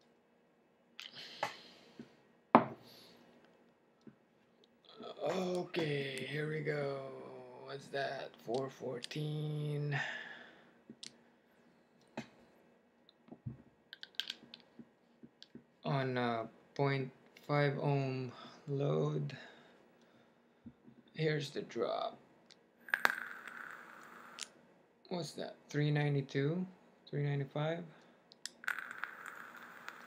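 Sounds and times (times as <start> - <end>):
atomizer coil sizzling: 22.8 - 24.6, 28.4 - 30.0.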